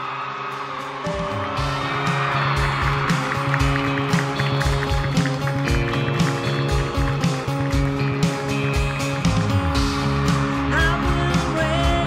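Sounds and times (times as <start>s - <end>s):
electric guitar chords: 0.0s - 12.0s
drum kit beat with cymbals: 0.6s - 12.0s
bass guitar: 1.1s - 12.0s.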